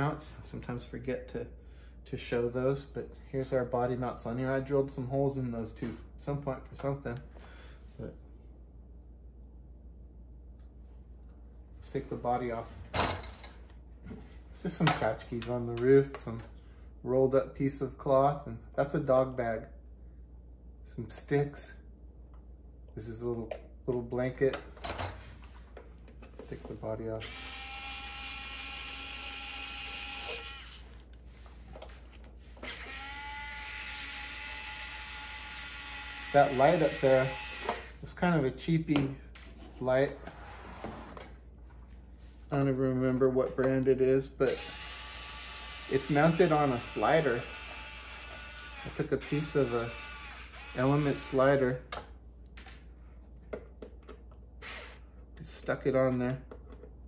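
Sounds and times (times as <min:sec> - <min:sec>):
low steady hum: 0:00.0 - 0:57.0
short breath: 0:07.3 - 0:08.0
electric screwdriver whining: 0:27.2 - 0:30.9, 0:32.6 - 0:37.9, 0:47.2 - 0:51.4, 0:54.6 - 0:55.0.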